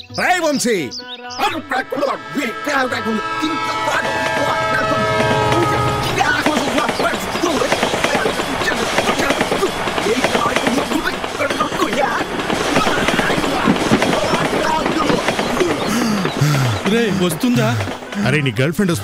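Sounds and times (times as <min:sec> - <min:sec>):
overlapping voices: 0:00.0 - 0:18.6.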